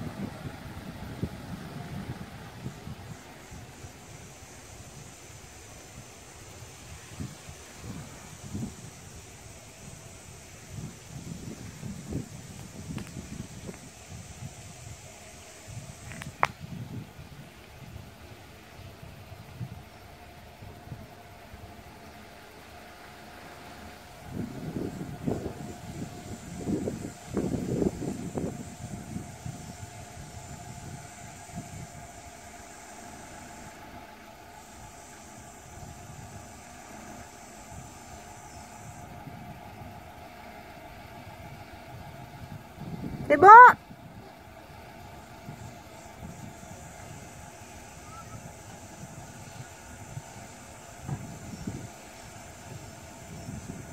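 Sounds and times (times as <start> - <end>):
motorhome engine running: 0.0 - 53.9.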